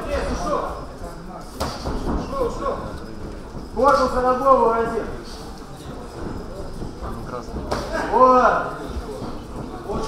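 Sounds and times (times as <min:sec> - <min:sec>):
faint voices: 0:00.0 - 0:10.0
footwork on ring canvas: 0:00.0 - 0:10.0.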